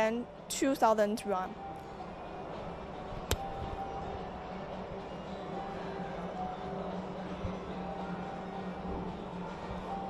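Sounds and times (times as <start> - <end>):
indoor showroom ambience: 0.0 - 10.0.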